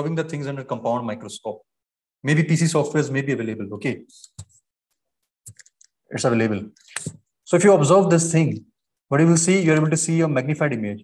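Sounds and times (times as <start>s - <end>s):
speech: 0.0s - 4.3s, 6.1s - 6.8s, 7.5s - 11.0s.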